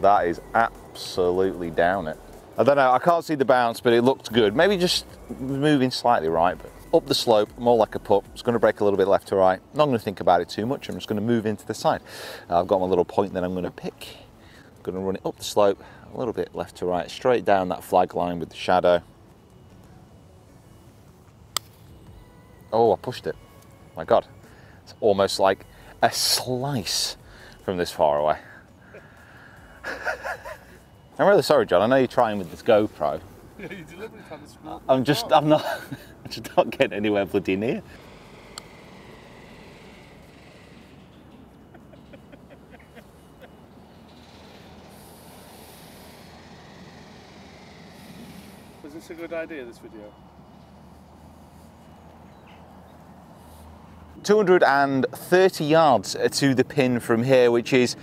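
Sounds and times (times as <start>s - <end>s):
faint background hiss: 0.0s - 58.0s.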